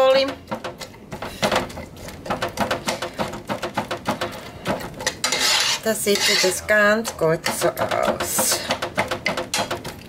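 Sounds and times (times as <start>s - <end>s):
metal spoon scraping a frying pan: 4.4s - 8.9s.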